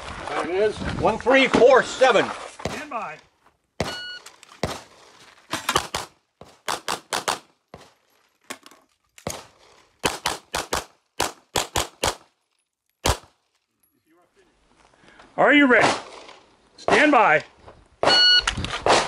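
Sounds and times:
rapid pistol shots: 5.8s - 7.5s, 9.3s - 12.3s, 13.0s - 13.3s.

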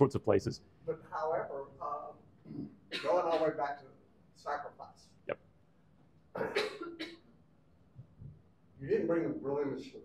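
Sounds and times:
person coughing: 6.3s - 7.3s.

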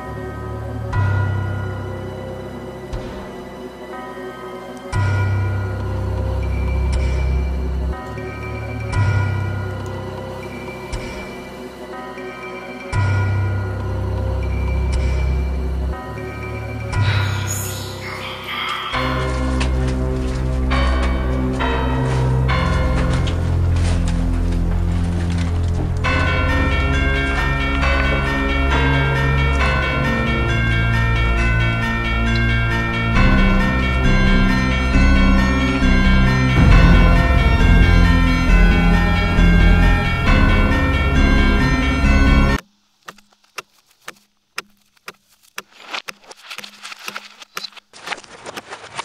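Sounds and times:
horror film score: 0.0s - 42.6s
low sustained drone: 13.4s - 42.6s.

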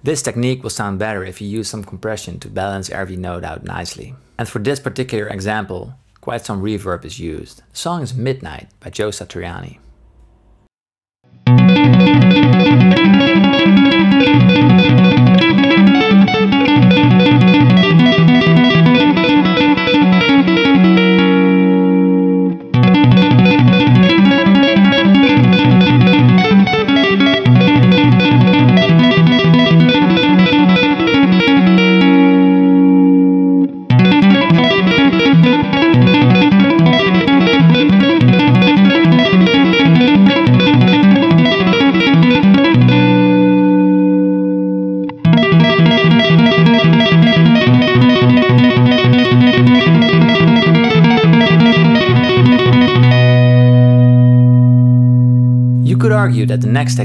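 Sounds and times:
low guitar chord ringing: 11.3s - 55.8s
electric guitar tapping: 11.3s - 57.0s.

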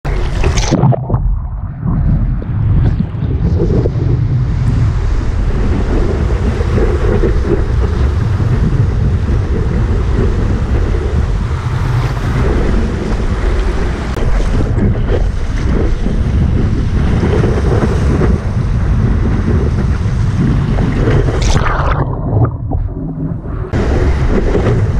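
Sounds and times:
wind rumble on microphone: 0.1s - 24.9s.

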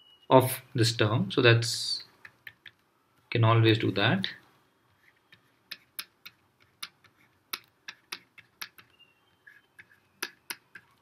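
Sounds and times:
stylus clicking on tablet: 2.2s - 2.9s, 5.0s - 11.0s.

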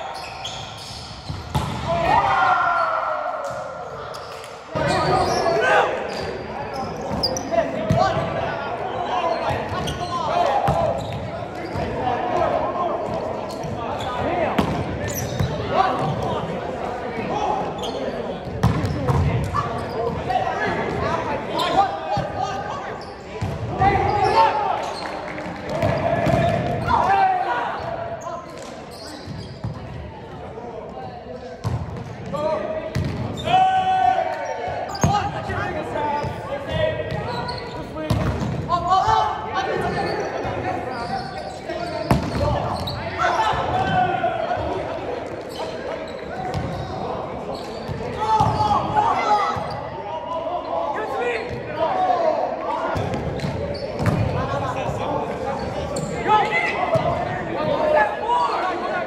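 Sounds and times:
players calling and shouting: 0.0s - 59.0s.

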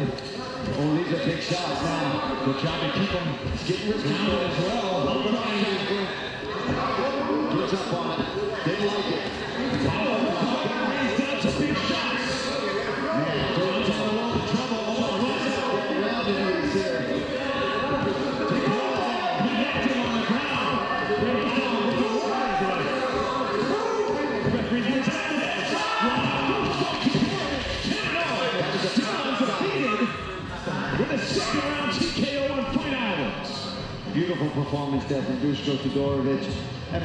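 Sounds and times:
voices talking over one another: 0.0s - 37.0s.

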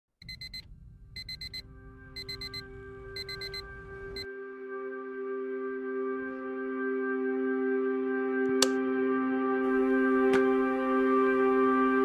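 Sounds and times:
digital alarm clock beeping: 0.2s - 1.6s, 2.2s - 4.3s
steady sustained tones: 9.0s - 12.0s.

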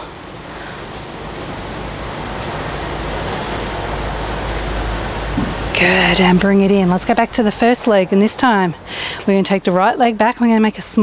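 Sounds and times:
steady rushing with low rumble: 0.0s - 10.6s.

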